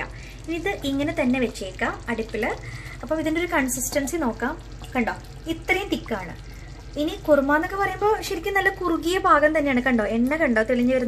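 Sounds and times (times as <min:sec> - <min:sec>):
curry simmering and bubbling: 0:00.0 - 0:11.0
steady low hum: 0:00.0 - 0:11.0.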